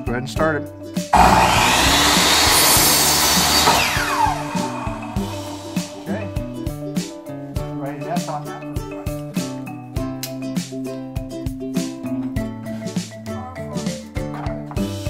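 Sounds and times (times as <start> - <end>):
background music with beat: 0.0 - 15.0
miter saw cutting wood: 1.2 - 6.2
saw blade winding down: 1.2 - 6.3.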